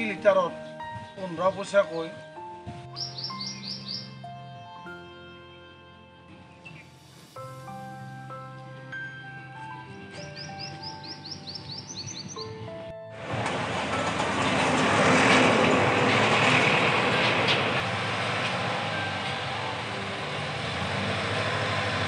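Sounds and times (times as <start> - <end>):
soft background music: 0.0 - 17.4, 18.0 - 22.0
outdoor street noise: 2.1 - 22.0
high rising chirps: 3.0 - 4.2.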